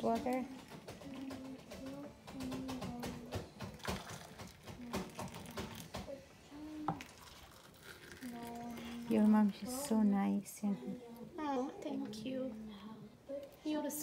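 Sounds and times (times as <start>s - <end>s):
hot water pouring into glass cups: 3.3s - 10.5s.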